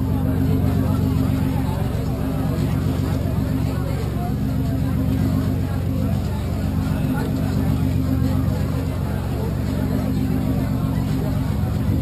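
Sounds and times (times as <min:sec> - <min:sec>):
indistinct chatter of voices: 0:00.0 - 0:12.0
low mechanical hum: 0:00.0 - 0:12.0.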